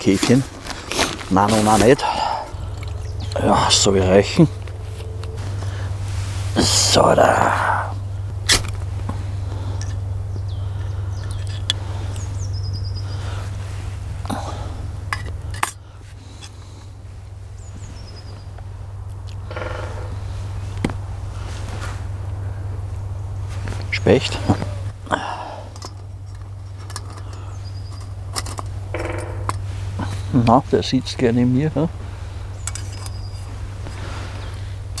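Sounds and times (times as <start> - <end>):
steady low hum: 0.0 - 35.0
high falling bird calls: 0.7 - 8.4, 9.0 - 15.1, 15.8 - 35.0.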